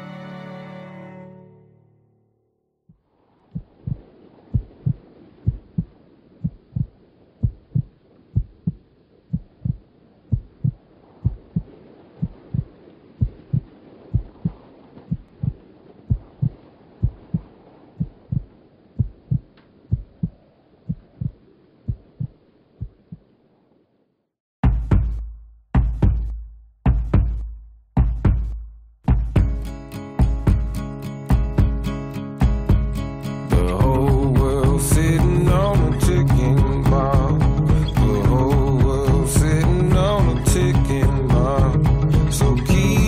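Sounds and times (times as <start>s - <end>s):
heartbeat-like low thumps: 3.5s - 23.2s, 24.6s - 29.6s, 30.2s - 31.8s, 32.4s - 43.0s.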